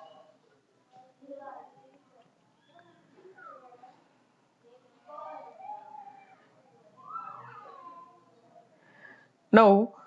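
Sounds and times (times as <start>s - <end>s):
faint drawn-out pitched calls: 2.5s - 4.1s, 5.0s - 8.3s.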